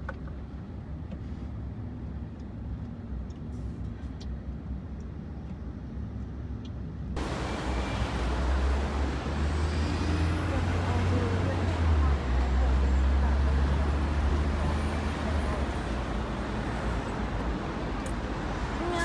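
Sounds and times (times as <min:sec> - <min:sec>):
car road and engine rumble: 0:00.0 - 0:19.0
city traffic hiss: 0:00.9 - 0:06.0, 0:07.2 - 0:19.0.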